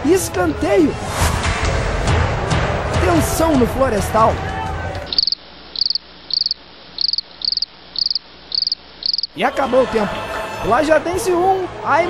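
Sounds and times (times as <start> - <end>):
cricket chirping: 5.1 - 9.4.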